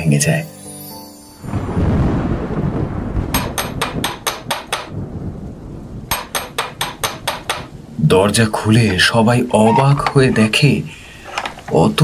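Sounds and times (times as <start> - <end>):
rain: 1.3 - 12.0
thunder rumble: 1.4 - 12.0
door knocker on wooden door: 3.3 - 4.9, 6.1 - 7.7.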